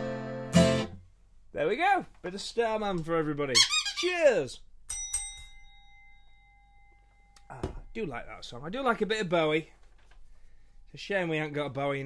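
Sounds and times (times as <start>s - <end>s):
glass ringing note: 4.9s - 8.0s.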